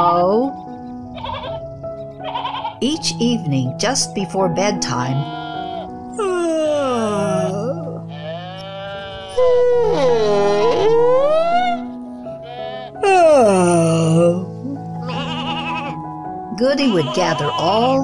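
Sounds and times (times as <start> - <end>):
soft background music: 0.0 - 18.0
sheep bleating: 1.2 - 1.6, 2.2 - 2.8, 5.1 - 6.0, 7.1 - 11.0, 12.4 - 13.0, 15.0 - 16.1, 16.8 - 18.0.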